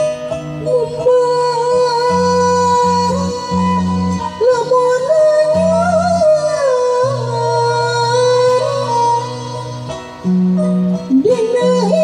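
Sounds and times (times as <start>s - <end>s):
violin: 0.0s - 12.0s
woman singing melismatic line: 11.1s - 12.0s.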